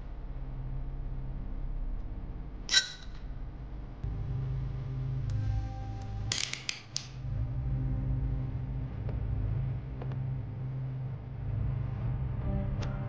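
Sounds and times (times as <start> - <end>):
low steady drone: 0.0 - 13.0.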